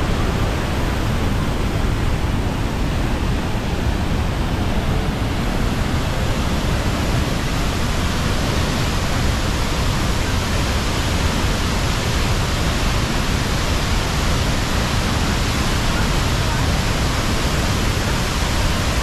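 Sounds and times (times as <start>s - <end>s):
waterfall rushing: 0.0s - 19.0s.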